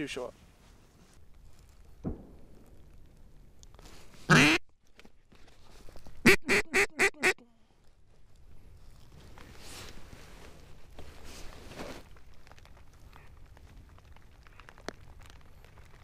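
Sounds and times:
duck call quacks: 4.3 - 4.6, 6.2 - 7.4.

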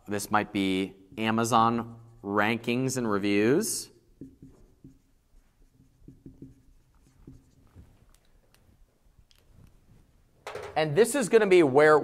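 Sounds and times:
marker writing on whiteboard: 4.0 - 8.3.

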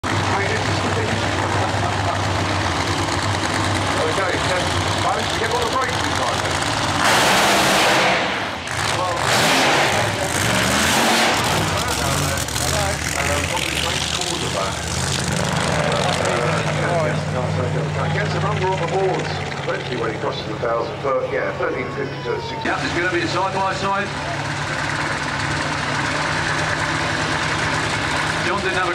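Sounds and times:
drag racing car engines: 0.0 - 28.9
public-address voice: 16.4 - 24.2.

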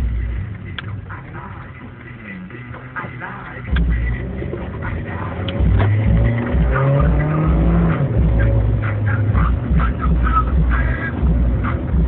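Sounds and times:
car engine revving: 0.0 - 12.0.

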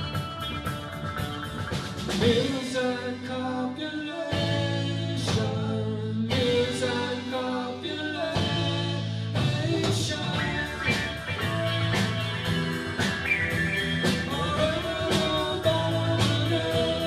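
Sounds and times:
drum hits: 0.0 - 2.7
live rock band playing: 0.0 - 3.4, 4.3 - 17.0.

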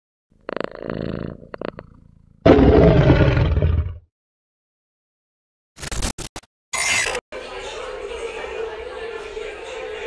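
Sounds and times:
loud roar: 2.4 - 4.0.

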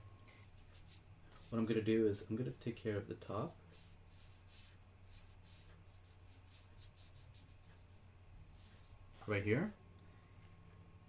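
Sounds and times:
marker stroking across paper: 0.4 - 1.8, 3.7 - 9.4.

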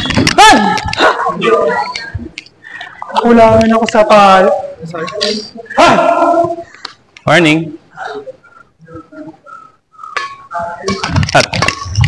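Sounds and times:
person shouting: 5.8 - 6.6.

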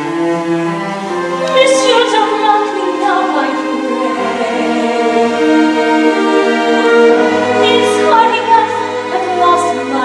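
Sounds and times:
sustained orchestral chords: 0.0 - 10.0.

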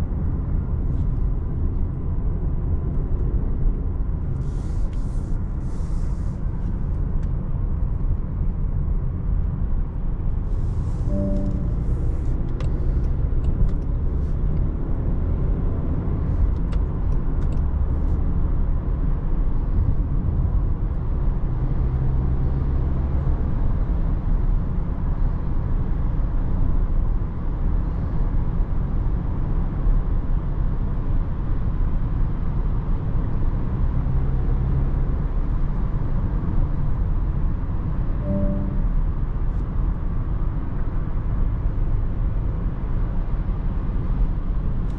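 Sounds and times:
car cabin drone of tyres and engine: 0.0 - 44.9.

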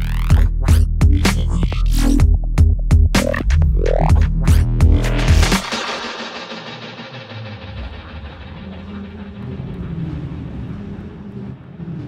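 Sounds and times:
filtered electronic dance music: 0.0 - 10.0.

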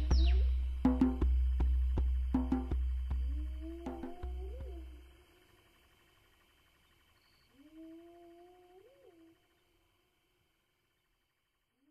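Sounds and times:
faint low animal-like call: 3.2 - 5.5, 7.2 - 9.7.

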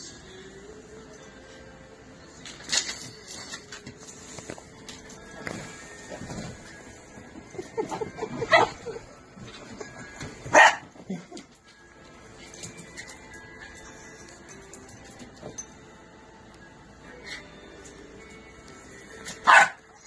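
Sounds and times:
small dog barking: 10.5 - 10.9, 19.4 - 19.8.

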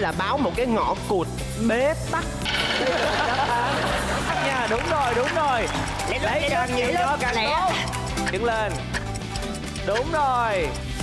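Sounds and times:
background music: 0.0 - 11.0
people laughing and talking: 2.2 - 10.9.

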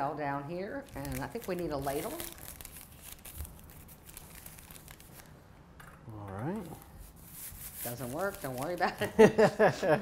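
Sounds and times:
dough crinkling on rolling pin: 0.8 - 5.3, 6.4 - 9.0.

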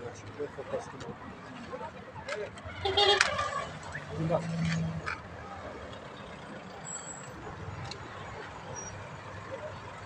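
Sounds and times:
vehicles driving slowly past: 0.0 - 10.0.

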